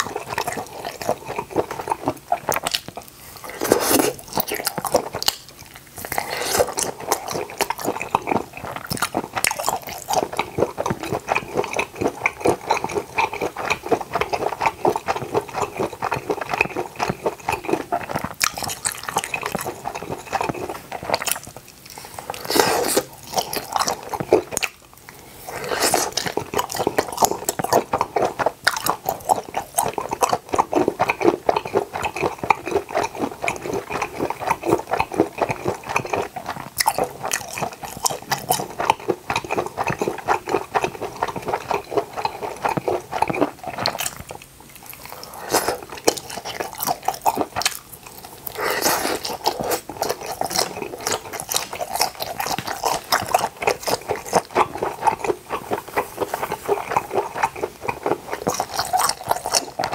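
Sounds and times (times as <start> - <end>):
close-miked wet chewing: 0.0 - 59.9.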